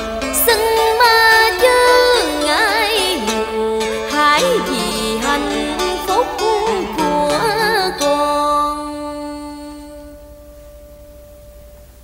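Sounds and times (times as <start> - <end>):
low steady hum: 0.0 - 12.0
plucked string note ringing: 0.0 - 12.0.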